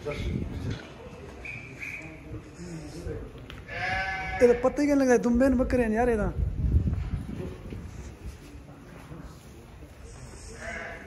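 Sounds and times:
sheep bleating: 3.7s - 4.7s, 10.6s - 11.0s.

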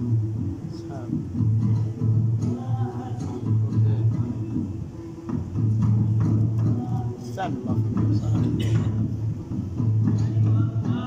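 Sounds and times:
regular beat of strikes: 0.0s - 11.0s.

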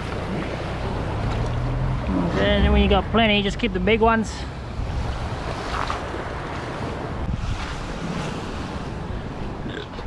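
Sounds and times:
waves washing against rocks: 0.0s - 9.6s
wind buffeting microphone: 0.0s - 9.7s.

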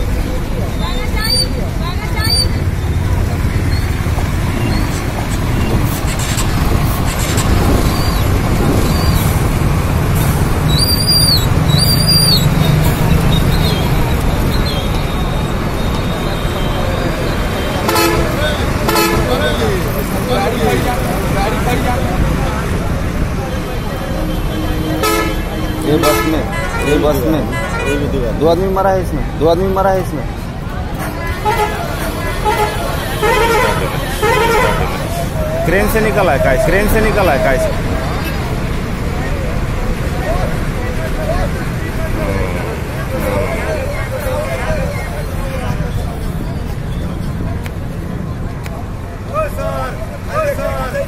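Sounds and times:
vehicle engines running: 0.0s - 51.0s
background voices: 29.2s - 46.6s.

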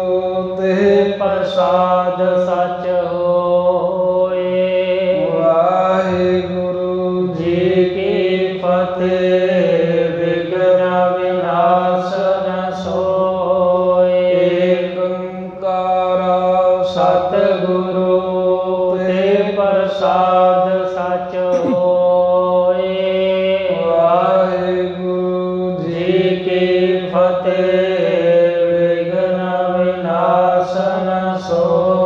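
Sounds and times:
man chanting: 0.0s - 32.0s.

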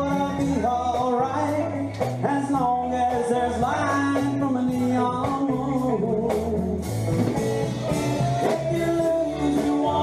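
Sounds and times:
live country band playing: 0.0s - 10.0s.

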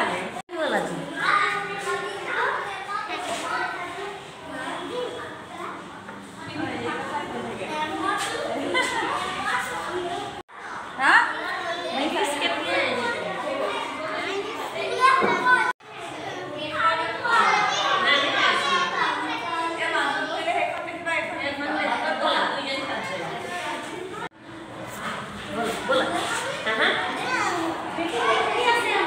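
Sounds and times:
young children talking and calling: 0.0s - 29.0s.

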